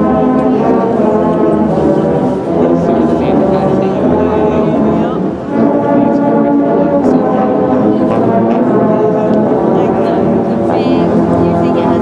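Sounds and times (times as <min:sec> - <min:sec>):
low brass ensemble chords: 0:00.0 - 0:12.0.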